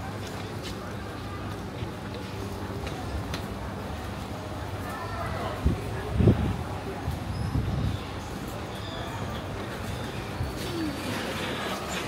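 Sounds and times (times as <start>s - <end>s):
background hubbub: 0.0s - 12.0s.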